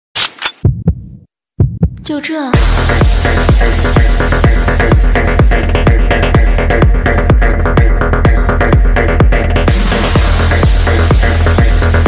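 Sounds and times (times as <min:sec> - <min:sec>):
deep heartbeat-like thumps: 0:00.6 - 0:11.7.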